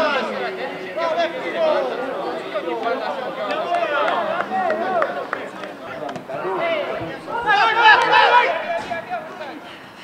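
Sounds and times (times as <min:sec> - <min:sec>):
players shouting: 0:00.1 - 0:09.7.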